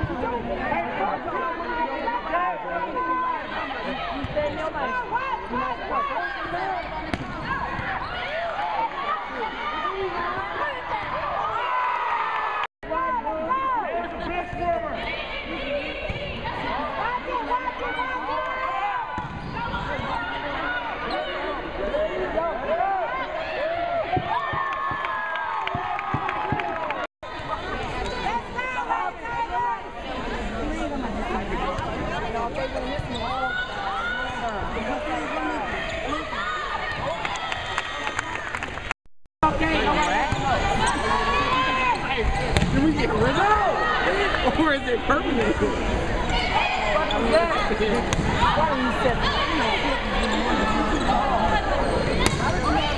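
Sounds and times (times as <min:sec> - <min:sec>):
players and spectators voices: 0:00.0 - 0:52.9.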